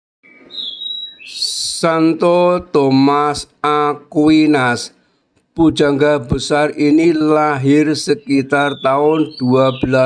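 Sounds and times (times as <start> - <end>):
high-pitched chirping whistles: 0.2 - 1.9, 8.2 - 10.0.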